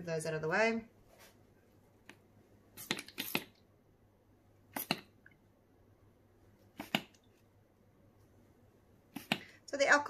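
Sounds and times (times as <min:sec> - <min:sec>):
spray bottle spritzing: 0:02.8 - 0:03.6, 0:04.7 - 0:05.1.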